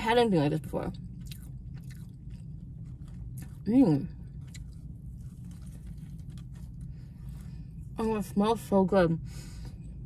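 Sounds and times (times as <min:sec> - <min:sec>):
low steady hum: 0:00.0 - 0:10.0
wet mouth chewing clicks: 0:01.2 - 0:03.6.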